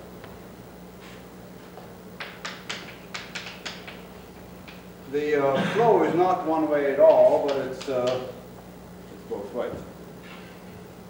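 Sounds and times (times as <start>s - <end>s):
chalk tapping on blackboard: 2.2s - 4.0s.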